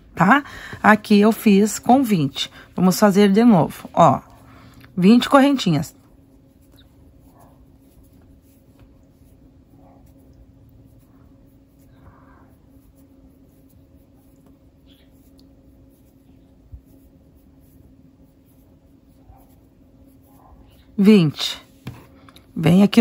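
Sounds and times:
steady low hum: 0.0 - 23.0
twine scratching through crochet hook: 5.0 - 22.0.

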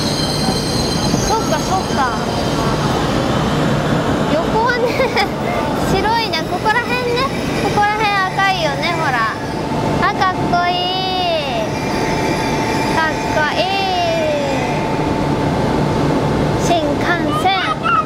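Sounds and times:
train moving with steady hum: 0.0 - 18.0
child squealing and calling: 17.3 - 18.0.

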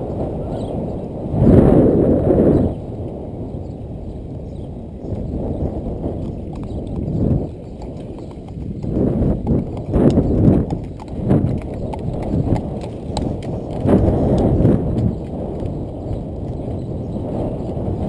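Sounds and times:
hooves clip-clopping on pavement: 4.1 - 18.0.

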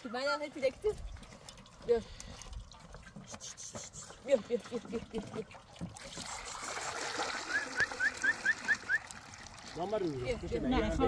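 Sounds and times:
water pouring into metal pot: 5.0 - 10.7.

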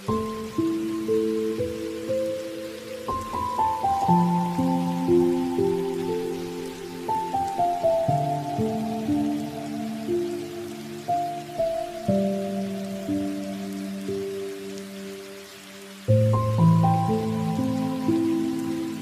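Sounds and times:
falling rain: 0.0 - 19.0
slow keyboard music: 0.0 - 19.0.

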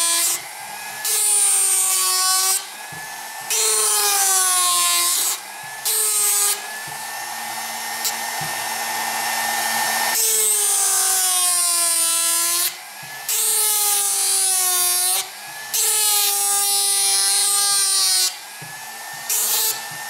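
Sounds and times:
motor whine: 0.0 - 10.2
gouge cutting into wood: 0.0 - 20.0.

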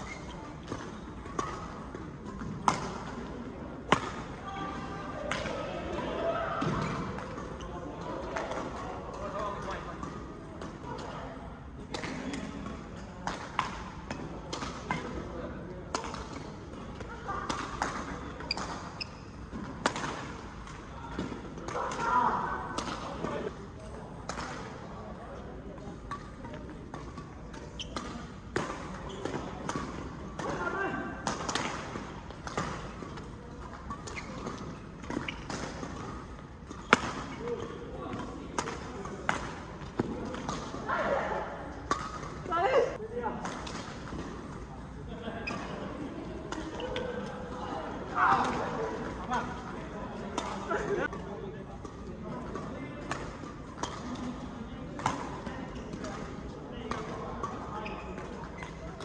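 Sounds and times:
players' voices: 0.2 - 59.0
rackets hitting shuttlecock: 0.7 - 3.1, 15.9 - 22.1, 26.0 - 40.8, 41.9 - 42.5, 46.5 - 47.3, 51.8 - 54.3, 54.9 - 56.3, 56.9 - 57.6.

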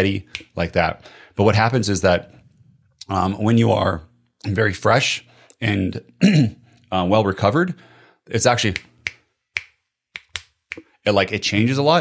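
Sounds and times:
fingers snapping: 8.7 - 10.9.

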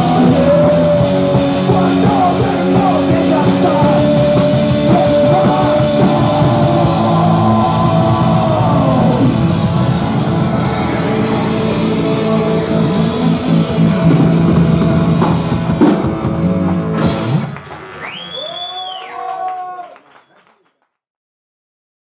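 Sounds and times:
live rock band playing: 0.0 - 18.0
audience cheering: 4.8 - 12.2, 16.4 - 20.7
shrill rising whistle: 18.0 - 19.8.

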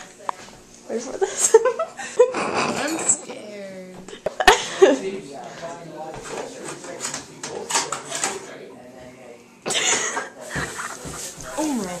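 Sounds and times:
low background voices: 0.0 - 12.0.

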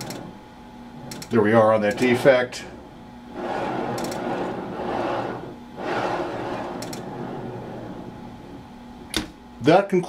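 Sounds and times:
steel bar scraping through rollers: 0.0 - 0.4, 1.0 - 9.1
relay clicks: 1.0 - 2.2.

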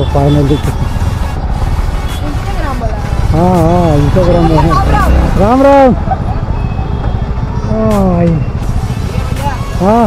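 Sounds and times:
motorcycle engine low rumble: 2.6 - 10.0.

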